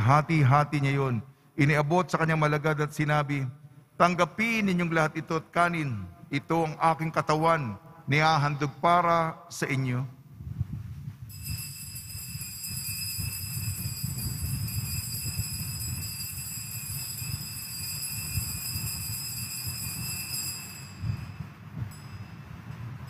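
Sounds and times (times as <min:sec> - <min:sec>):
altar bells ringing: 0:11.3 - 0:23.0.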